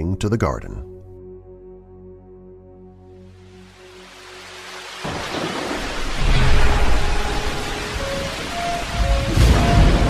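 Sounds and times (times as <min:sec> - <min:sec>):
steady rain: 0:03.2 - 0:10.0
thunder rumble: 0:05.0 - 0:10.0.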